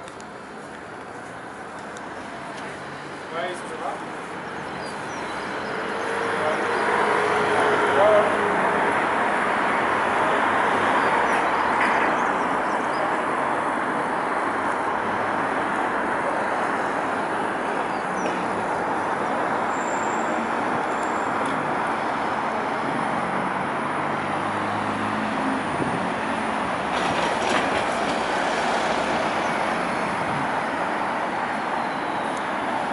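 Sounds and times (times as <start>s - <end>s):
cars passing: 0.0s - 32.9s
road traffic noise: 0.0s - 32.9s.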